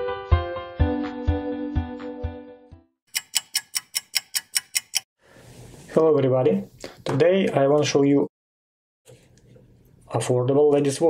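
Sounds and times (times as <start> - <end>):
clock-like ticking: 3.1 - 5.1.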